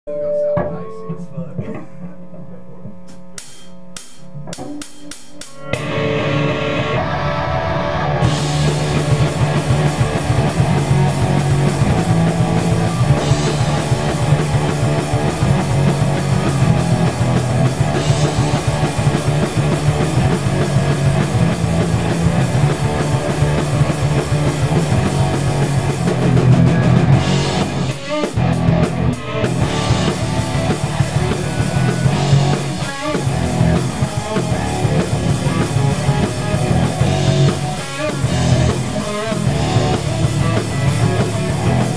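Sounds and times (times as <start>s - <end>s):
drum kit: 2.8s - 41.9s
rock band playing: 3.4s - 41.9s
electric guitars: 4.3s - 41.9s.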